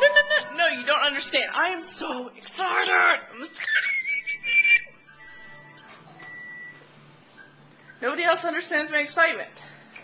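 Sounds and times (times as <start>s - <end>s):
woman squealing: 2.7s - 5.0s.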